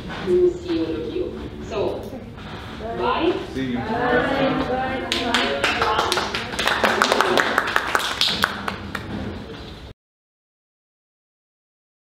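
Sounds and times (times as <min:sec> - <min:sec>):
voices: 0:00.1 - 0:07.6
audience clapping: 0:05.0 - 0:09.5.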